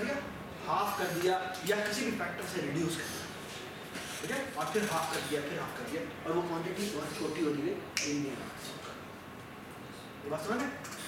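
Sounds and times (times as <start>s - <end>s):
man speaking: 0.0s - 3.3s, 4.2s - 8.8s.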